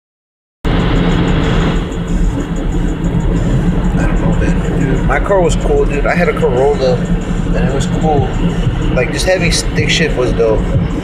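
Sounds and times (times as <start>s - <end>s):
car engine and road rumble: 0.6s - 11.0s
music playing: 0.7s - 11.0s.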